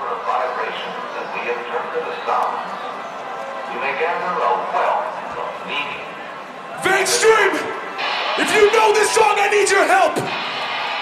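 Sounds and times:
people shouting: 6.8s - 11.0s.

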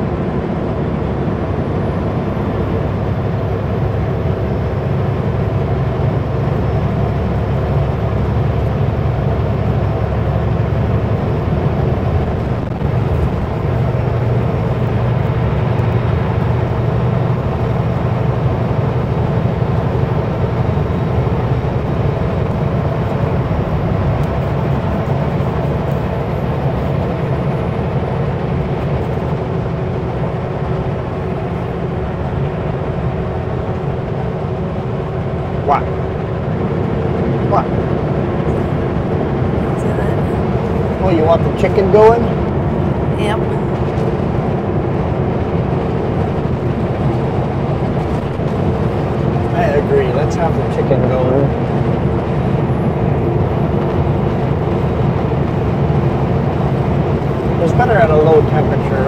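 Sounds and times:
diesel engine hum: 0.0s - 59.0s
road and wind noise: 0.0s - 59.0s.

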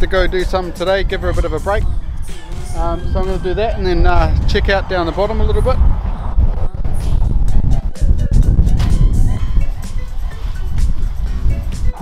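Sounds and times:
quiet background music: 0.0s - 12.0s
wind rumbling on microphone: 0.0s - 12.0s.

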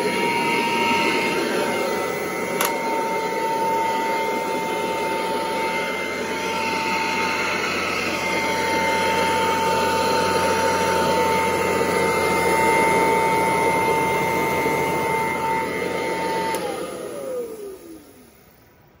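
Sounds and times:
vacuum cleaner motor whine: 0.0s - 19.0s.

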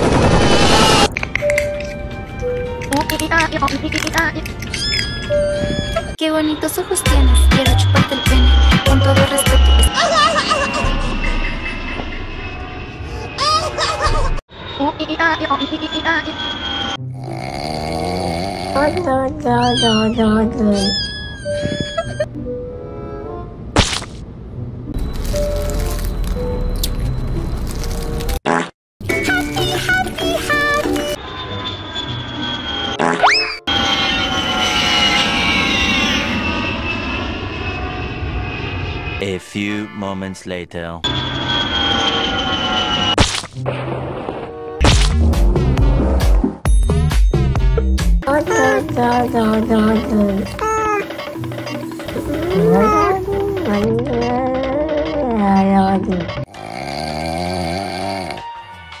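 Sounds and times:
music: 1.2s - 5.7s, 6.7s - 9.9s, 21.7s - 23.6s, 29.0s - 32.5s, 43.6s - 56.5s, 57.7s - 59.0s
cat-like vocal cries: 19.5s - 22.3s, 50.5s - 53.8s
sharp whack: 44.8s - 45.4s
music with heavy bass: 44.8s - 48.2s.

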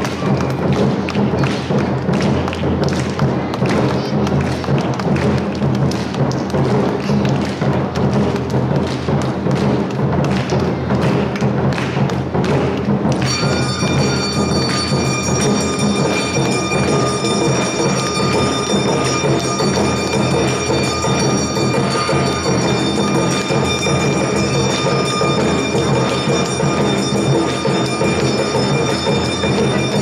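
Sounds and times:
taiko drums beating: 0.0s - 30.0s.

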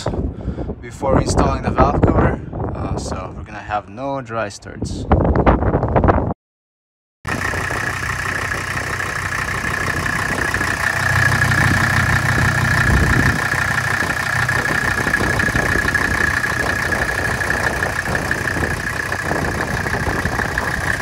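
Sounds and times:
diesel engine idling: 7.3s - 21.0s.

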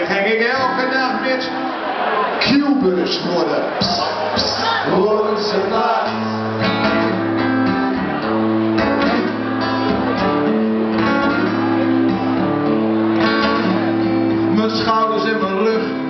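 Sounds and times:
guitar strummed: 3.8s - 16.0s.

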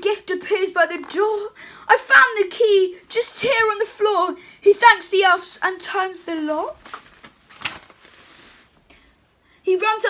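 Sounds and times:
paper page turning: 6.7s - 8.7s.

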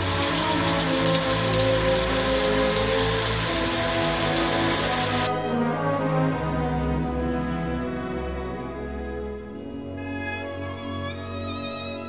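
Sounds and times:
water spraying from shower head: 0.0s - 5.3s
background music with held notes: 0.0s - 12.0s.

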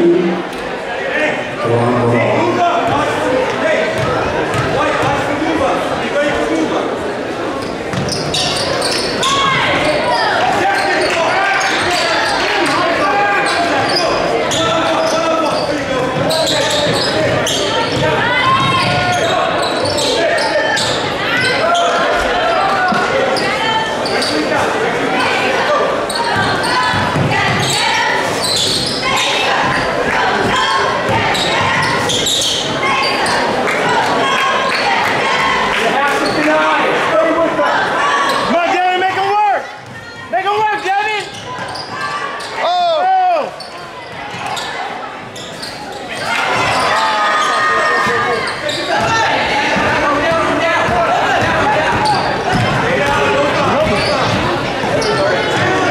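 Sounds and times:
crowd chatter and shouting: 0.0s - 55.9s
sneaker squeaks on court: 7.6s - 9.4s, 13.4s - 22.0s, 26.1s - 29.9s, 31.3s - 33.4s, 40.8s - 42.6s, 43.6s - 49.3s, 53.8s - 55.7s.

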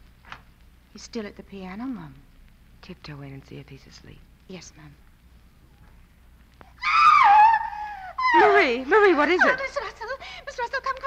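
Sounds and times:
woman screaming: 6.8s - 9.9s.

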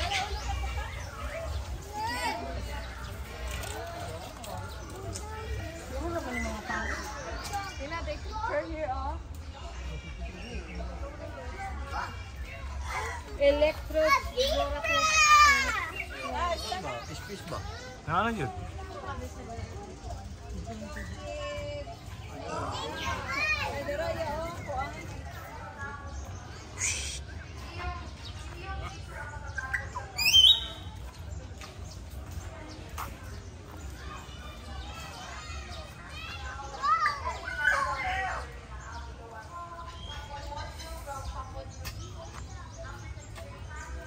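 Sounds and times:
chatter of voices: 0.0s - 44.0s
children calling and shrieking: 0.0s - 44.0s
bird squawking: 26.8s - 27.3s.

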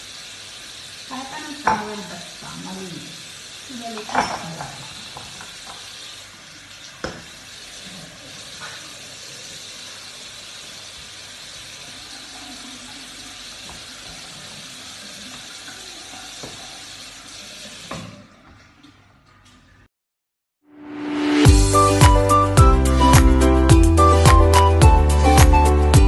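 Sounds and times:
tap water running into sink: 0.0s - 19.8s.

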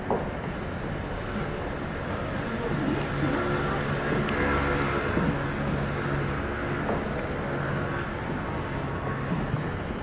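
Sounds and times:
low urban hum: 0.0s - 10.0s.

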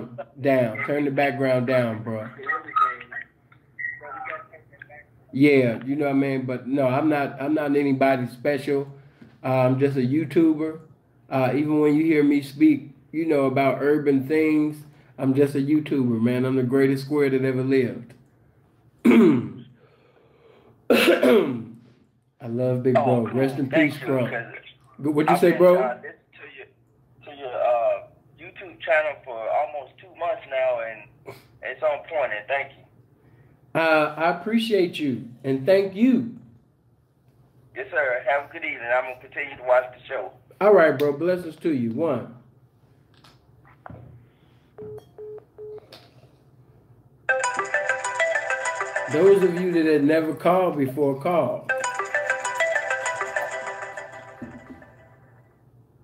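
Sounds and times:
man clearing his throat: 19.0s - 19.7s, 20.9s - 21.8s
melodic phone ringtone: 47.3s - 50.0s, 51.7s - 55.5s.

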